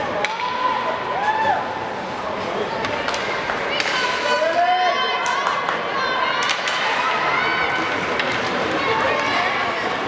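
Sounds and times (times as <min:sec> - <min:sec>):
ice rink noise: 0:00.0 - 0:10.0.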